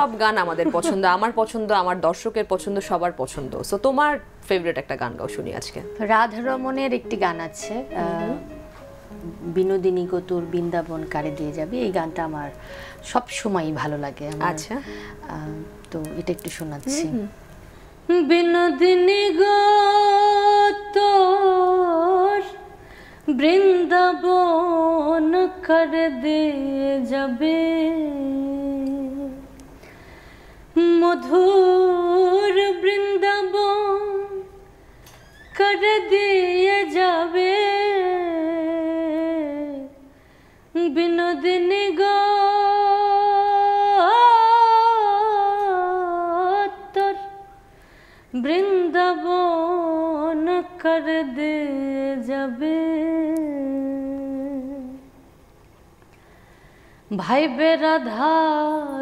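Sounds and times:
woman singing long note: 0:07.9 - 0:09.5
woman singing folk song: 0:18.1 - 0:29.6, 0:30.8 - 0:34.6, 0:35.2 - 0:40.0, 0:40.8 - 0:47.6, 0:48.4 - 0:55.1, 0:57.1 - 0:59.0.

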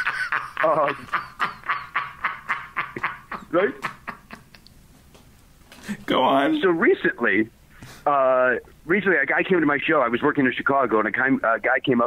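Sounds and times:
person laughing under their breath: 0:00.0 - 0:04.6.

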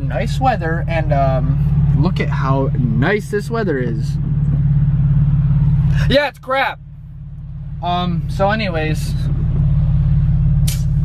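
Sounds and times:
car engine drone: 0:00.0 - 0:11.0.

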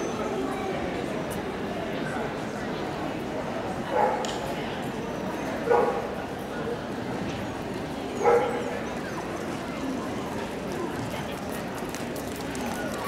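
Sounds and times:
crowd murmur: 0:00.0 - 0:13.0
dog barking: 0:04.0 - 0:04.2, 0:05.7 - 0:06.0, 0:08.2 - 0:08.6.

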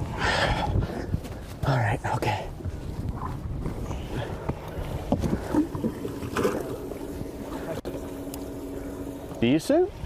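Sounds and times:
wind buffeting microphone: 0:00.0 - 0:07.5
steady low hum: 0:00.0 - 0:10.0.

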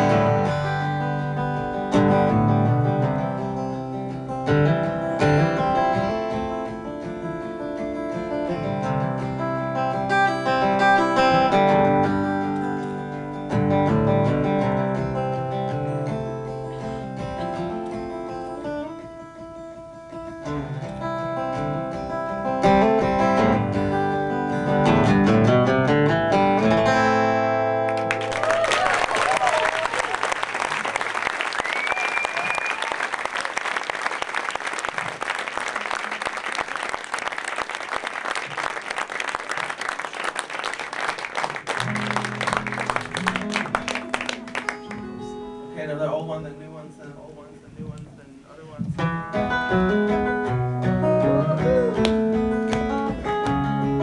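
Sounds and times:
acoustic guitar playing: 0:00.0 - 0:28.4, 0:41.0 - 0:54.0
audience applause: 0:27.9 - 0:45.1
audience cheering: 0:28.0 - 0:44.3
person whistling: 0:31.6 - 0:32.9, 0:51.3 - 0:52.1.

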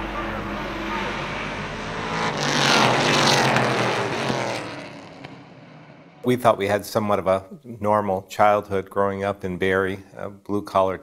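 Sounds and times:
race cars passing: 0:00.0 - 0:06.4.

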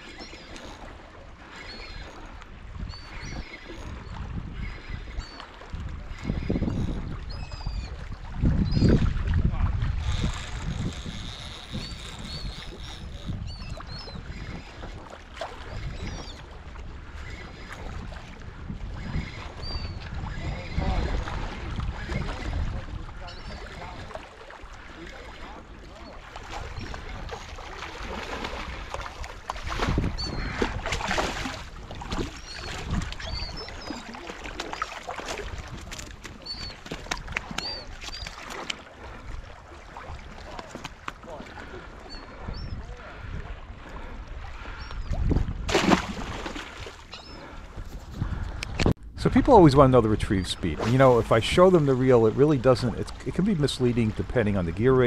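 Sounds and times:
seabirds calling: 0:00.0 - 0:55.0
wind and water rumbling: 0:00.0 - 0:55.0
fish thrashing in water: 0:23.6 - 0:42.5, 0:44.6 - 0:47.4.

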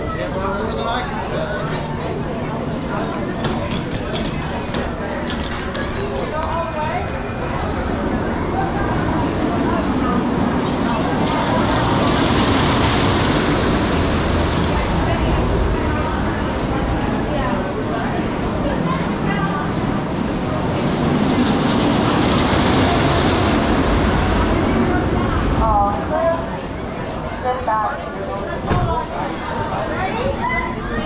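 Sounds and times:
roller coaster rumbling roar: 0:00.0 - 0:31.0
voices: 0:00.0 - 0:31.0.

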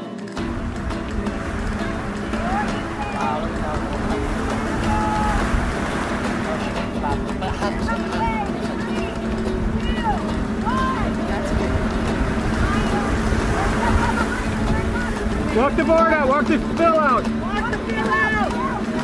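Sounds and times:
faint voices: 0:00.0 - 0:19.0
surf breaking on rocks: 0:00.0 - 0:19.0
wind on microphone: 0:00.4 - 0:16.8.

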